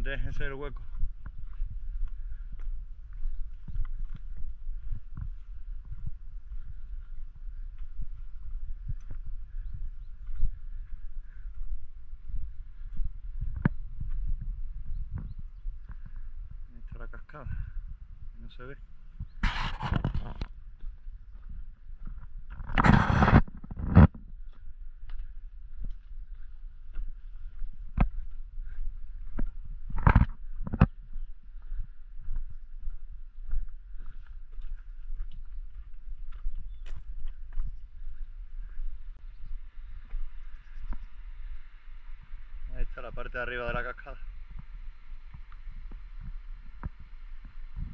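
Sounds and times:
footsteps on stony path: 0:00.0 - 0:47.9.

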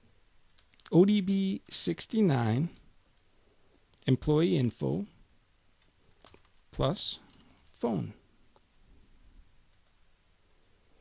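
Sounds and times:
low room noise: 0:00.0 - 0:11.0
computer mouse clicks: 0:09.7 - 0:10.0.

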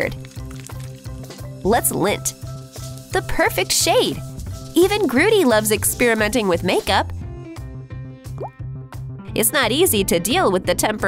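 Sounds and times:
background music with steady beat: 0:04.1 - 0:09.9.

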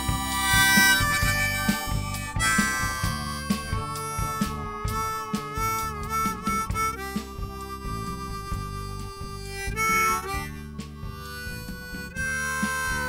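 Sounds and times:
folk-rock band playing: 0:00.0 - 0:13.0
harmonica solo: 0:00.0 - 0:13.0.

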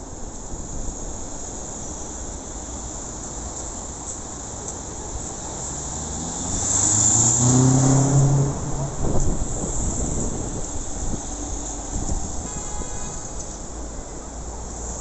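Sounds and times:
road noise: 0:00.0 - 0:15.0
vehicle engine passing: 0:05.6 - 0:10.6.

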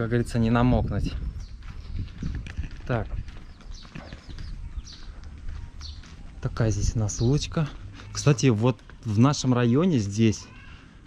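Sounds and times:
wind rumble on microphone: 0:00.0 - 0:07.5
footsteps on asphalt: 0:00.5 - 0:11.0.

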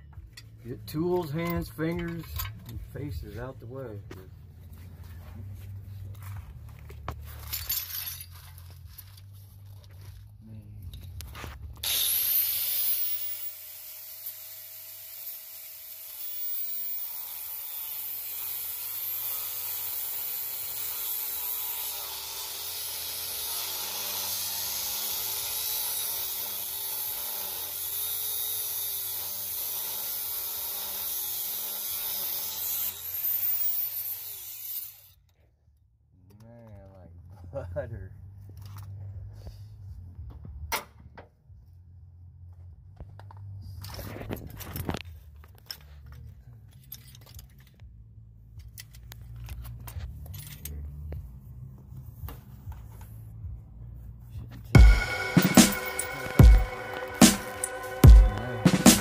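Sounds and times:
cut-off wheel cutting steel: 0:11.8 - 0:35.2, 0:54.8 - 0:59.0.

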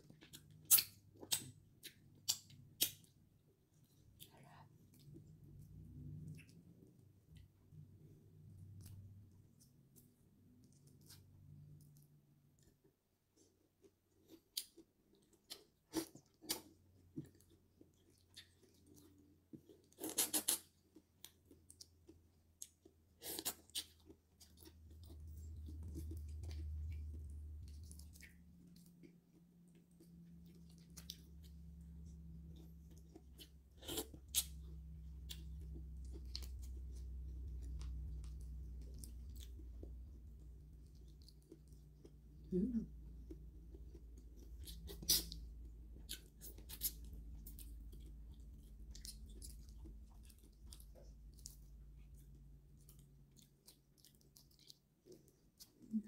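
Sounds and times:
quiet chewing: 0:00.0 - 0:56.0
steady low hum: 0:24.5 - 0:53.8.

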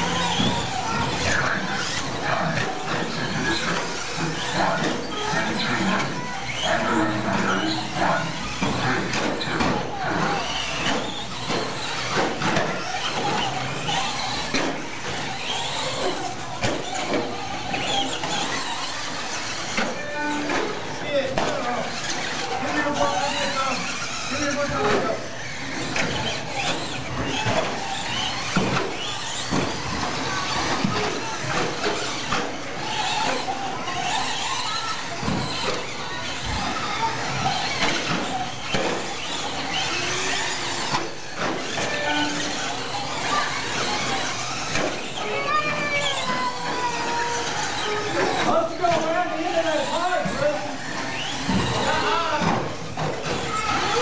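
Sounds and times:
murmur of voices: 0:00.0 - 0:54.0
rc truck motors whining: 0:00.0 - 0:54.0.

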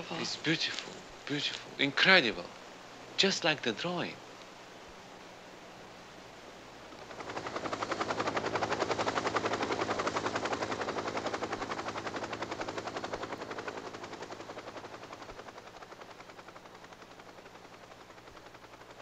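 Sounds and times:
helicopter rotor chop: 0:00.0 - 0:19.0.

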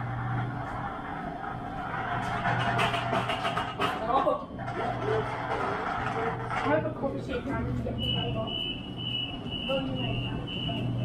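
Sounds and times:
electric train low hum: 0:00.0 - 0:02.5.

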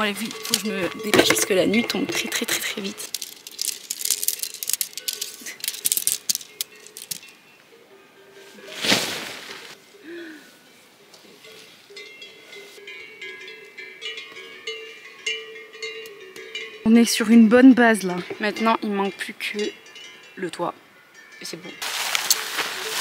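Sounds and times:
tent poles clicking and clinking: 0:00.0 - 0:09.8, 0:21.2 - 0:23.0.

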